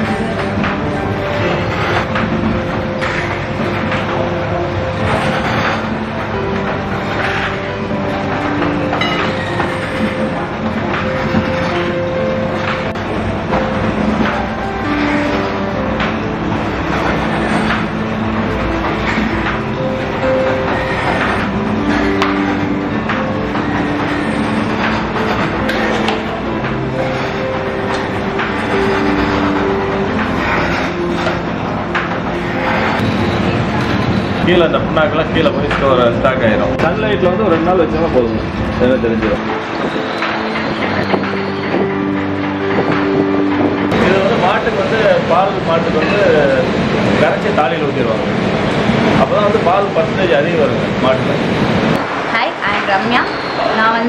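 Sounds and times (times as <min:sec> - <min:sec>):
background music with held notes: 0:00.0 - 0:52.3
machinery clattering: 0:00.0 - 0:54.0
machinery rumble and hum: 0:00.0 - 0:54.0.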